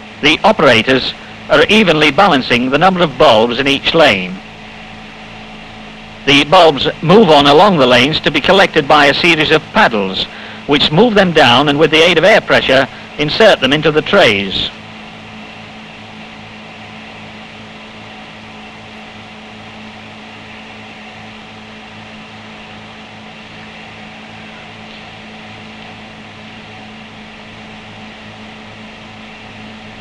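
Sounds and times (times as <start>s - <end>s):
film soundtrack hiss: 0.0s - 30.0s
low electrical hum: 0.0s - 30.0s
steady tones: 0.0s - 30.0s.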